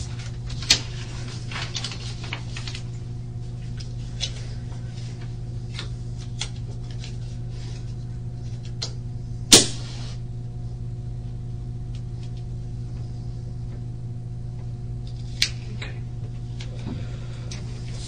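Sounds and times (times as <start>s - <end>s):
low room hum: 0.0s - 18.0s.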